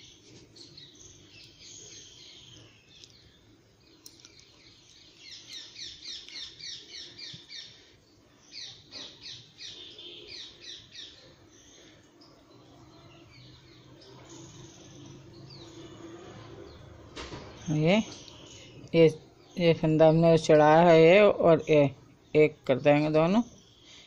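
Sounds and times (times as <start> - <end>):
bird chirping: 0.0 - 24.0.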